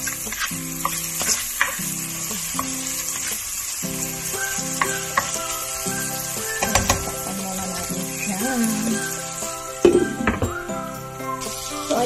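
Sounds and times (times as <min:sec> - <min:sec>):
spatula scraping and tapping pan: 0:00.0 - 0:02.0, 0:04.6 - 0:08.2
food sizzling in a wok: 0:00.0 - 0:12.0.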